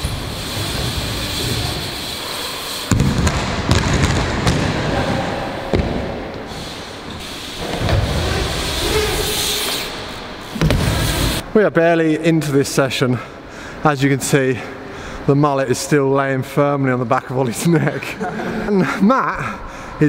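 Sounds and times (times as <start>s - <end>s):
bike tyres rumbling on ramps: 0.0s - 11.4s
bikes thudding on ramps: 0.0s - 11.4s.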